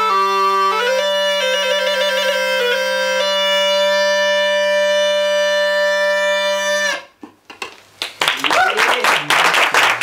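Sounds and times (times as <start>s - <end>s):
bagpipe note over drone: 0.0s - 7.1s.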